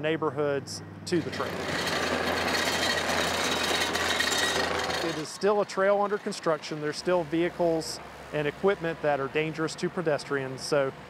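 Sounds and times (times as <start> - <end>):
diesel engine with high whine: 0.0 - 11.0.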